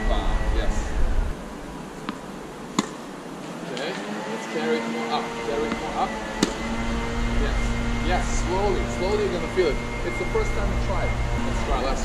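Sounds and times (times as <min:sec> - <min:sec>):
steady low hum: 0:00.0 - 0:12.0
racket hitting tennis ball: 0:02.0 - 0:03.2, 0:05.6 - 0:07.0.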